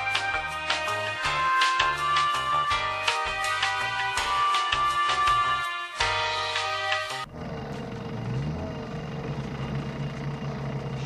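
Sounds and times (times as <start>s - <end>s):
background music: 0.0s - 7.3s.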